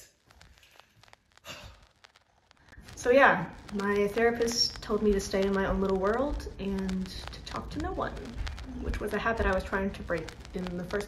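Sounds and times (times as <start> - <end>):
person sighing: 1.4 - 1.8.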